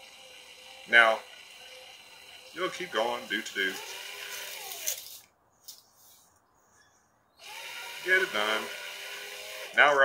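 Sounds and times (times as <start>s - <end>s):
cordless drill motor whining: 0.0s - 5.2s, 7.4s - 10.0s.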